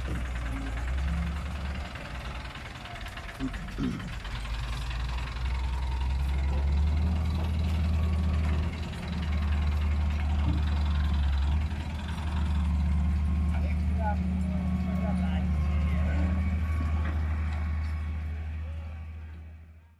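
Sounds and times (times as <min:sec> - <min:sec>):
tractor diesel engine running: 0:00.0 - 0:19.8.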